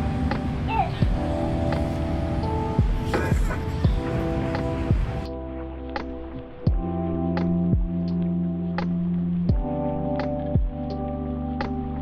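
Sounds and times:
low drum hit: 0:02.8 - 0:04.1.

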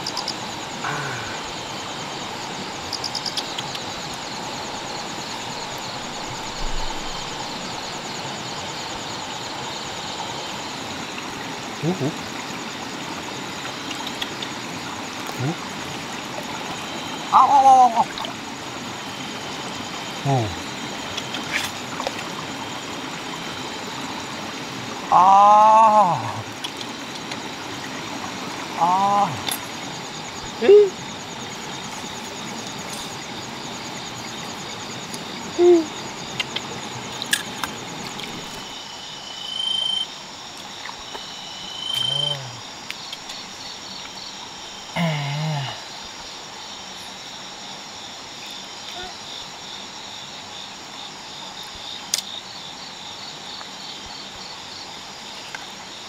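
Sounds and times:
frogs calling: 0:00.0 - 0:56.0
high insect drone: 0:00.0 - 0:56.0
running stream water: 0:00.0 - 0:56.0.

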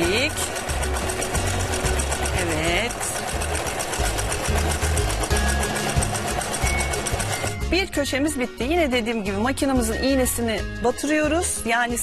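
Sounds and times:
electric sewing machine stitching: 0:00.0 - 0:07.8.

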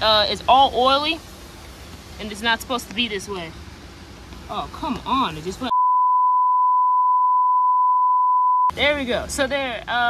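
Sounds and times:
steady test-tone beep: 0:05.7 - 0:08.7.

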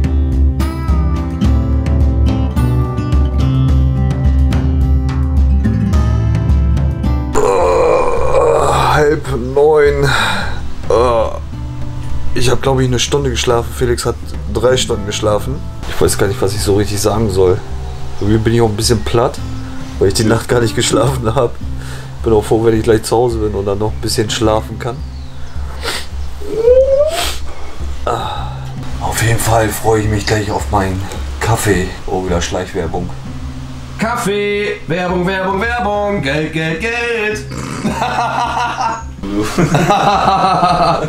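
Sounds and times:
acoustic guitar music: 0:00.0 - 0:41.0
man groaning: 0:07.3 - 0:09.2, 0:10.9 - 0:11.4
drawn-out rising voice-like call: 0:26.4 - 0:27.5.

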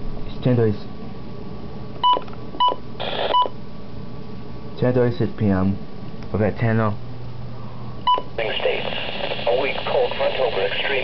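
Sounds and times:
radio key beeps: 0:02.0 - 0:03.6, 0:08.1 - 0:11.0.

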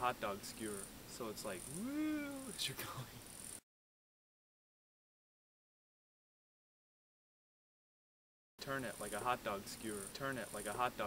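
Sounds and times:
faint outdoor background noise: 0:00.0 - 0:03.6, 0:08.6 - 0:11.0.

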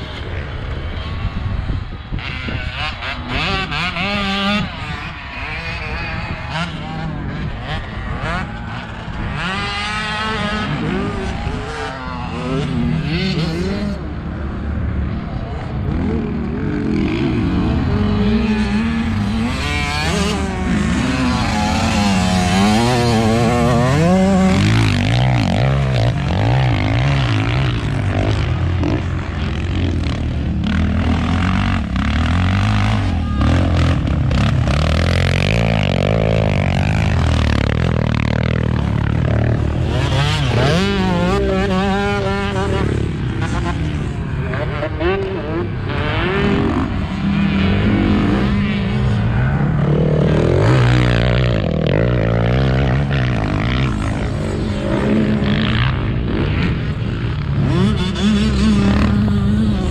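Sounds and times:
motocross engines revving: 0:00.0 - 0:59.9.

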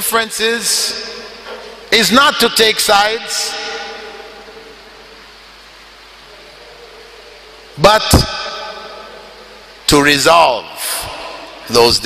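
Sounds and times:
echo of speech: 0:00.0 - 0:05.1
background hiss: 0:00.0 - 0:12.0.

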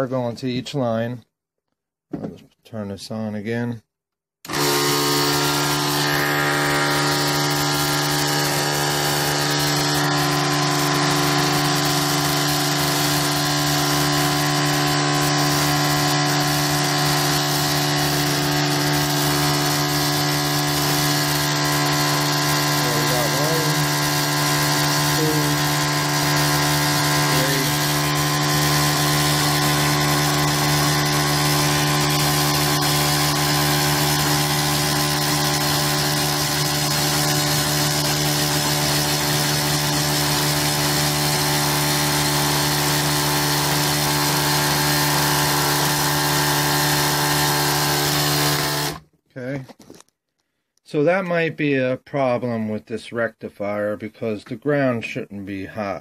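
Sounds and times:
small electric motor humming: 0:04.5 - 0:49.0.

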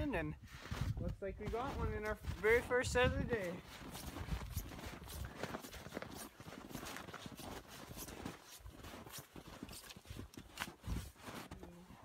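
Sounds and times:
footsteps crunching through snow: 0:00.0 - 0:12.0.

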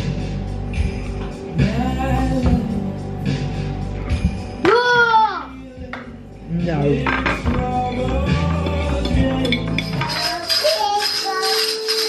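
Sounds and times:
music: 0:00.0 - 0:12.0
cutlery clinking on plates: 0:07.1 - 0:12.0.

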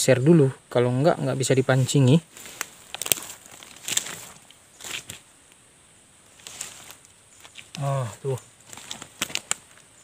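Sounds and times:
dry leaves rustling: 0:01.2 - 0:05.3, 0:06.2 - 0:10.0
twigs snapping: 0:02.4 - 0:05.6, 0:06.2 - 0:07.9, 0:08.6 - 0:09.9.

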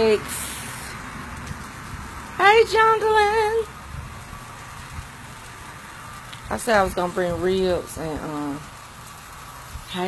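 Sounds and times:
ribs sizzling on a grill: 0:00.0 - 0:10.0.

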